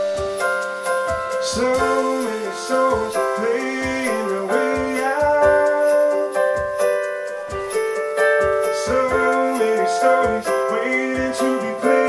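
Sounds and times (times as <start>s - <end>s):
keyboard playing piano chords: 0.0s - 12.0s
man singing: 1.4s - 7.0s, 8.6s - 12.0s.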